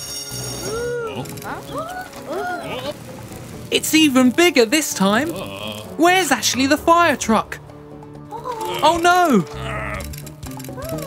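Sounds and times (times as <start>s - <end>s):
background music: 0.0s - 11.0s
voice-like calls: 0.6s - 3.0s, 8.3s - 11.0s.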